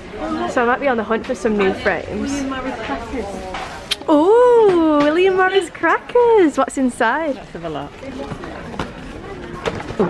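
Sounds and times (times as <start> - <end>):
low indistinct voices: 0.0 - 10.0
shop background noise: 0.0 - 10.0.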